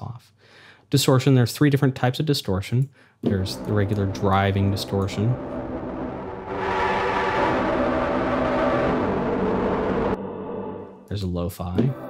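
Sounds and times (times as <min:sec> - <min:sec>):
distorted synth pad note: 0:03.5 - 0:11.1.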